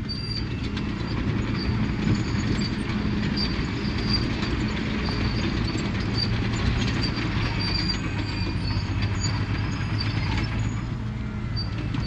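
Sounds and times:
diesel engine running: 0.0s - 12.0s
steel tracks squeaking and clanking: 0.0s - 12.0s.

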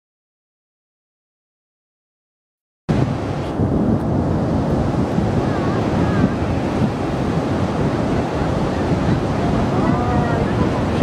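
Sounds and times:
sea surf: 2.9s - 11.0s
wind buffeting microphone: 2.9s - 11.0s.

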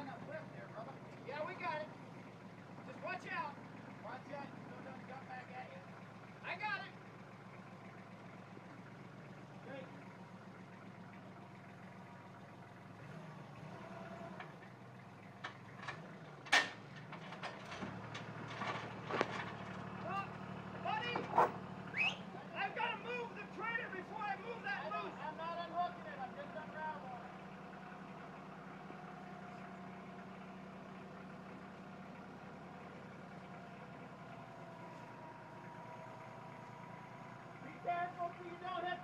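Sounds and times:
tractor engine running: 0.0s - 39.0s.

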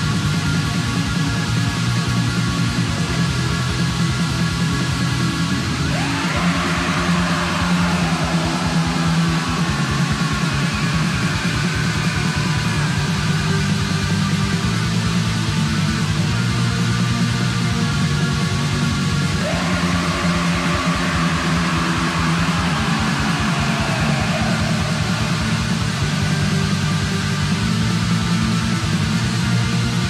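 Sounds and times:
distorted guitars: 0.0s - 30.0s
fast dense drumming: 5.9s - 15.4s, 19.4s - 29.0s.

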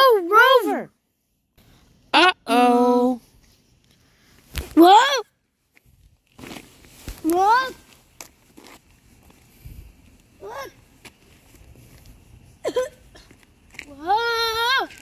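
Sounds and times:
person exclaiming: 2.2s - 3.2s.

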